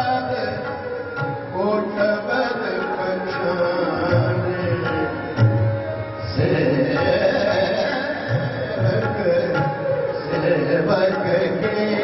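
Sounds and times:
harmonium sustained notes: 0:00.0 - 0:12.0
tabla playing: 0:00.0 - 0:12.0.

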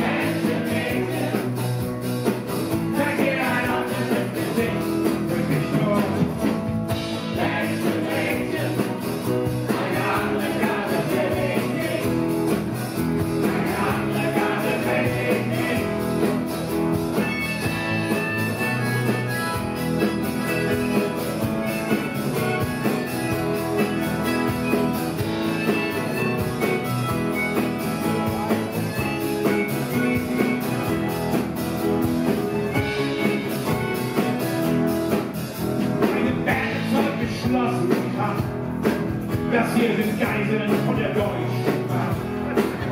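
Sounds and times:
people singing: 0:00.0 - 0:01.8, 0:02.8 - 0:06.2, 0:07.2 - 0:12.6, 0:13.3 - 0:16.4
live rock band playing: 0:00.0 - 0:42.9.

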